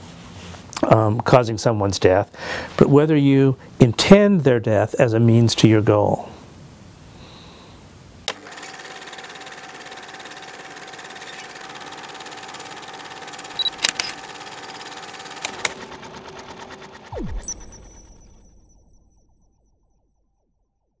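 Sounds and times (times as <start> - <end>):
mechanical whirring with rapid ticking: 8.3 - 18.9
sharp clicks: 13.6 - 14.3, 15.4 - 15.9.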